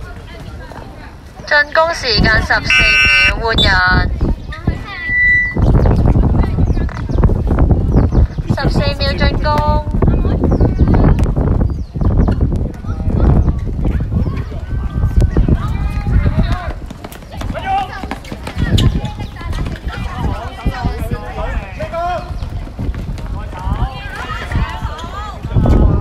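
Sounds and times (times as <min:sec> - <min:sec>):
girls calling out: 0:02.4 - 0:03.8
sneakers running: 0:15.6 - 0:25.5.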